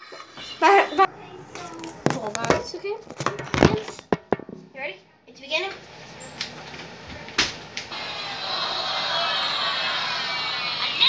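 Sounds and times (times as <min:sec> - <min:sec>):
child's voice: 0:00.5 - 0:03.0
phone knocking on counter: 0:03.2 - 0:04.7.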